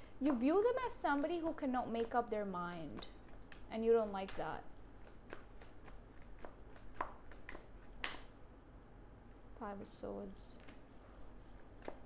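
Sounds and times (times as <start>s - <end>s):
cards being shuffled: 1.1s - 8.3s, 10.6s - 12.0s.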